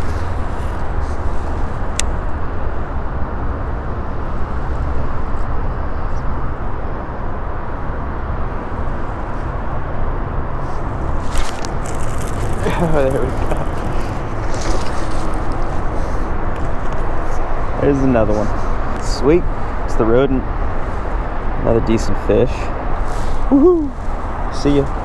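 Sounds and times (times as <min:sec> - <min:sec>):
highway traffic rumble: 0:00.0 - 0:25.0.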